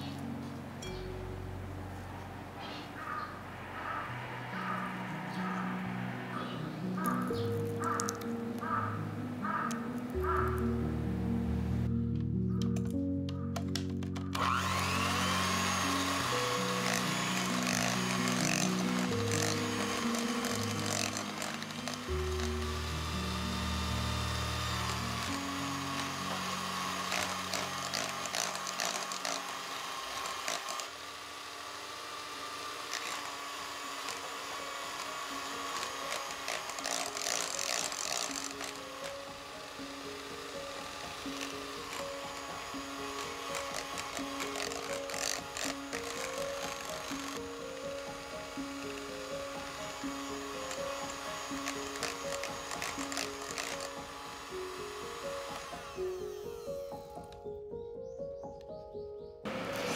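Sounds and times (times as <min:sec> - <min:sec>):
background music: 0:00.0 - 0:59.9
electric hand mixer running: 0:14.3 - 0:57.4, 0:59.5 - 0:59.9.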